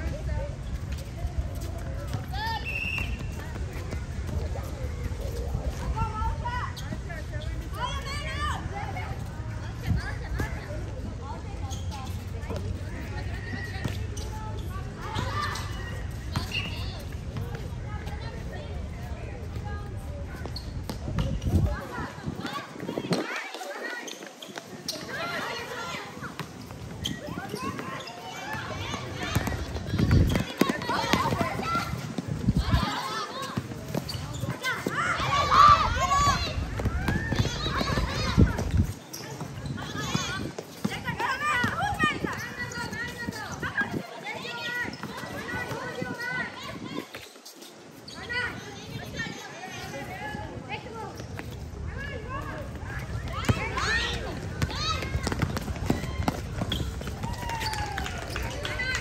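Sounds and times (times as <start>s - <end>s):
players' voices: 0.0s - 59.0s
basketball bouncing on hard court: 29.2s - 31.6s, 36.7s - 38.8s, 53.4s - 57.3s.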